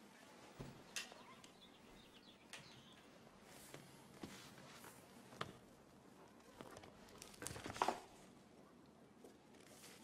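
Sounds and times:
faint bird chirps: 0.2s - 3.2s
handling of notebook: 6.3s - 8.3s, 9.2s - 10.0s.

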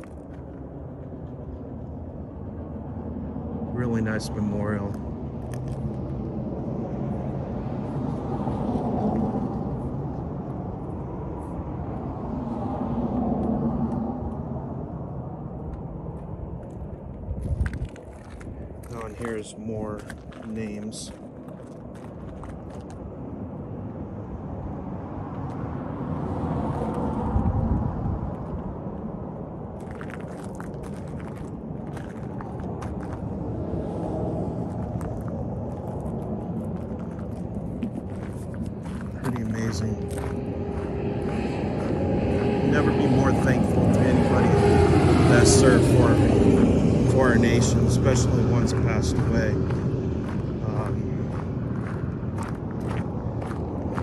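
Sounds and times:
vehicle engine hum: 0.0s - 54.0s.

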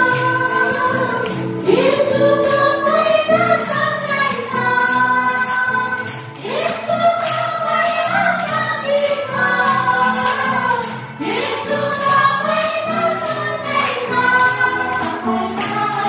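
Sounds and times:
tambourine beat: 0.0s - 16.0s
women singing worship song: 0.0s - 16.0s.

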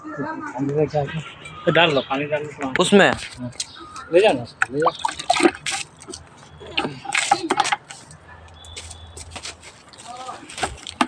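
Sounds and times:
water splashing in plastic bucket: 4.6s - 7.9s
bucket knocks and handling: 4.6s - 8.0s.

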